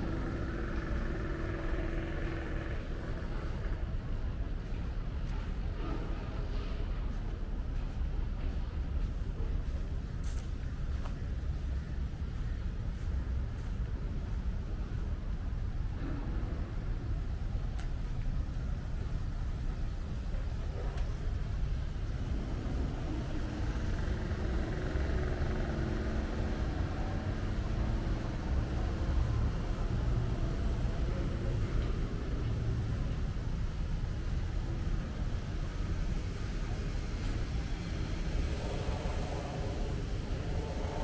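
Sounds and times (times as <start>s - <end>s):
faint hum: 0.0s - 41.0s
low city rumble: 0.0s - 41.0s.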